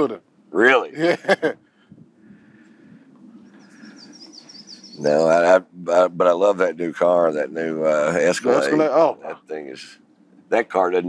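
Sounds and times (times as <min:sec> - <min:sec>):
bird chirping: 0:02.6 - 0:05.5.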